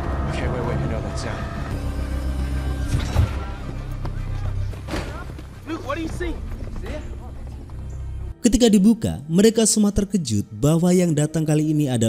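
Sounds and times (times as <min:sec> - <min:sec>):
low steady film score: 0:00.0 - 0:12.0.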